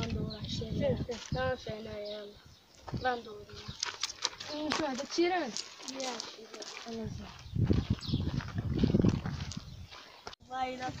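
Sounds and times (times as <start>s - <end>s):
child's voice: 0.0s - 3.8s, 4.4s - 7.3s, 10.4s - 11.0s
wind buffeting on microphone: 0.0s - 3.9s, 7.0s - 10.0s, 10.6s - 11.0s.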